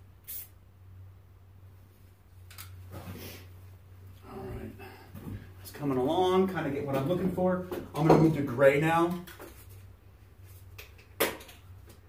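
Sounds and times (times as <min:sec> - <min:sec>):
faint low hum: 0:00.0 - 0:10.8
spray paint can squirt: 0:00.2 - 0:00.6.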